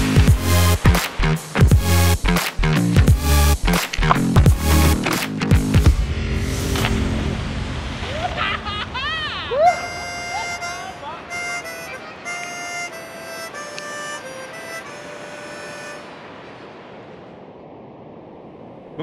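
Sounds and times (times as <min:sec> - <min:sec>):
harmonica playing: 0:09.7 - 0:16.4.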